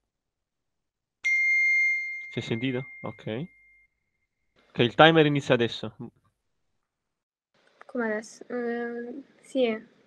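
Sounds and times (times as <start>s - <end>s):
timer chime ding: 1.2s - 4.1s.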